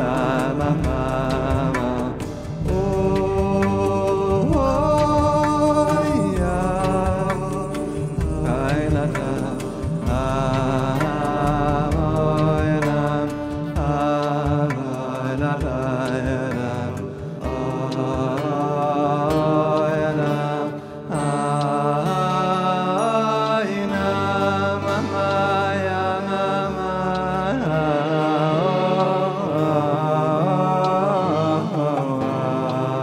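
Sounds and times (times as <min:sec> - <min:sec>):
instrumental accompaniment: 0:00.0 - 0:33.0
person singing with vibrato: 0:00.0 - 0:33.0.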